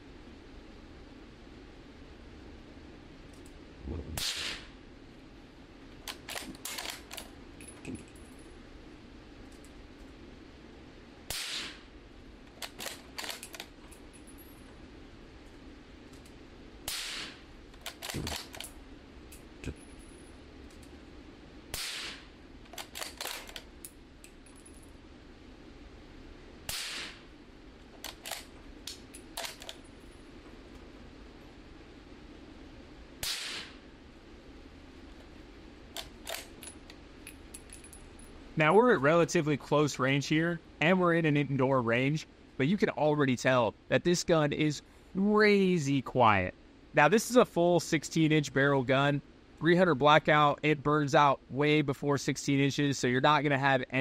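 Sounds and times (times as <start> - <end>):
suppressed rifle shots: 4.2 - 4.8, 11.3 - 11.9, 16.8 - 18.7, 21.7 - 23.6, 26.7 - 27.3, 33.2 - 33.8
rifle bolt clicks: 6.1 - 7.3, 12.5 - 13.7, 17.8 - 18.8, 22.7 - 24.0, 28.0 - 29.8, 36.0 - 37.0.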